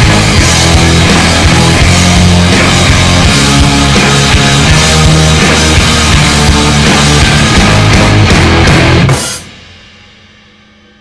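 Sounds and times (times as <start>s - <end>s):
drum kit hit with crash cymbal: 0.0s - 11.0s
ringing rock band chord: 0.0s - 11.0s.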